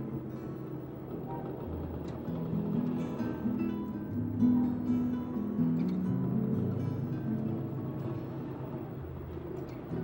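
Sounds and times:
guitar music: 2.3 - 10.0.

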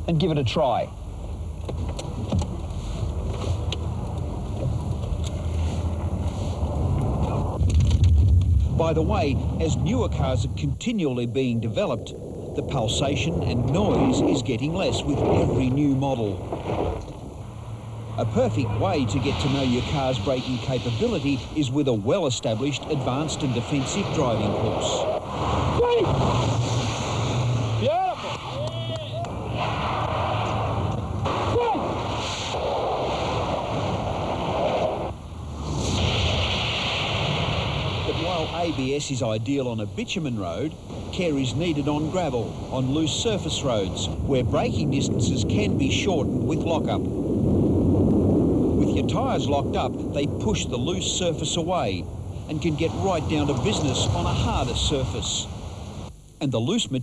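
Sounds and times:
car engine tyre and wind noise: 0.0 - 56.2.

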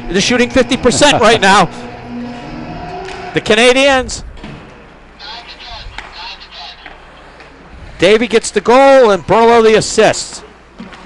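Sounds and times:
commentary: 5.2 - 7.1
faint voices talking: 5.2 - 7.2.

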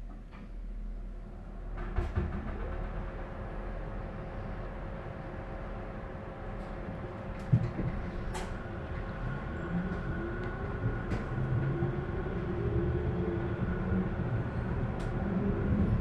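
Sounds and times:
wheels rumbling on rail: 0.4 - 16.0.

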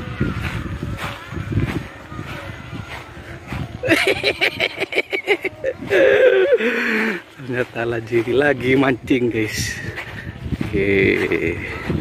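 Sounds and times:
footsteps on dirt path: 0.0 - 12.0
wind rumbling on microphone: 0.0 - 12.0.

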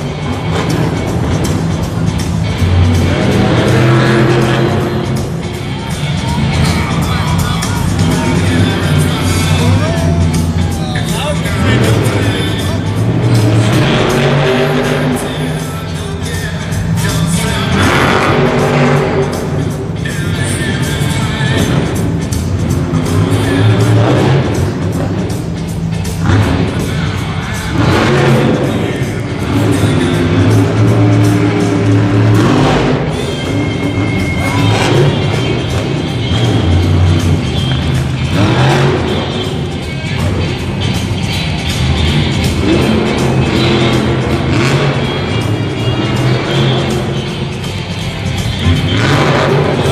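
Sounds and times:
loud arena music: 0.0 - 49.9
truck engine revving: 0.0 - 49.9.

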